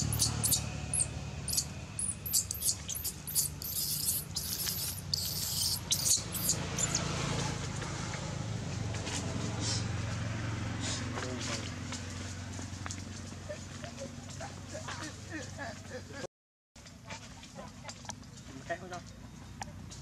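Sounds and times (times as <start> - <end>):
baby monkey squeaking: 0.0 - 7.1.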